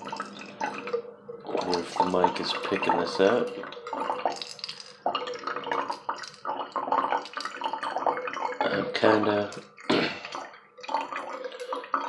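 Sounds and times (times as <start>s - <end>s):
water trickling into a can: 0.0s - 12.0s.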